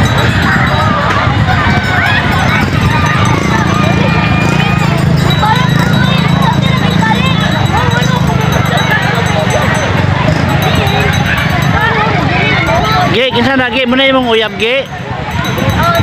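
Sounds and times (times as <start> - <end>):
crowd talking: 0.0 - 16.0.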